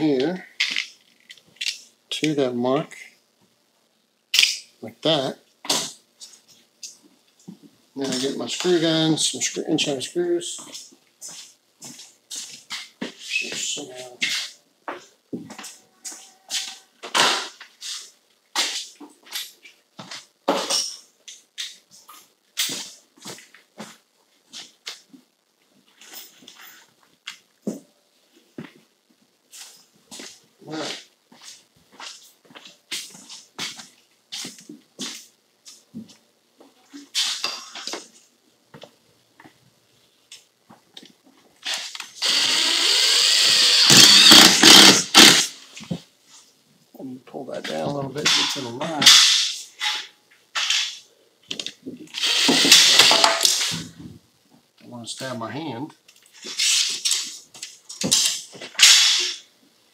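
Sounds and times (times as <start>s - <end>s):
cordless screw gun driving screw: 41.7s - 45.5s, 52.1s - 53.6s.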